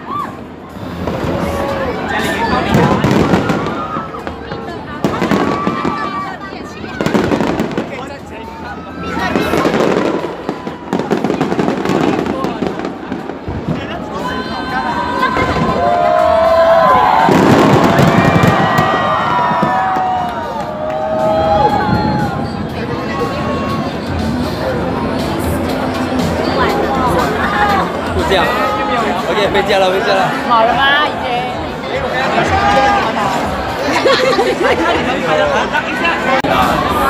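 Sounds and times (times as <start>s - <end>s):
crowd voices and exclamations: 0.0s - 37.0s
fireworks bursting with booms: 2.7s - 6.3s, 6.9s - 8.2s, 9.3s - 13.9s, 17.2s - 20.2s.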